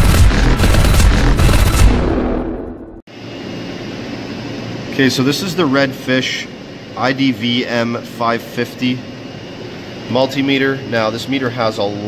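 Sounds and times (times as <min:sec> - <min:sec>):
deep boom rumble: 0:00.0 - 0:03.0.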